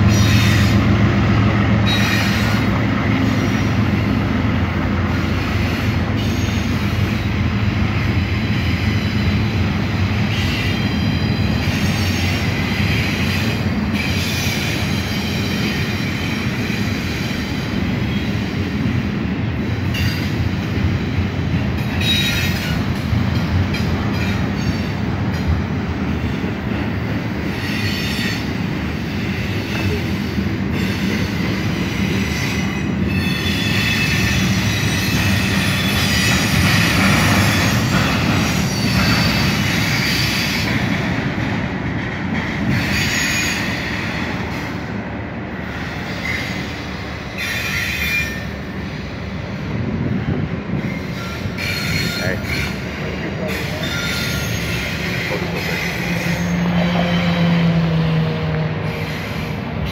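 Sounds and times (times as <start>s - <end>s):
steel wheels rumbling on rail: 0.0s - 59.9s
high-pitched wheel squeal: 53.5s - 57.6s.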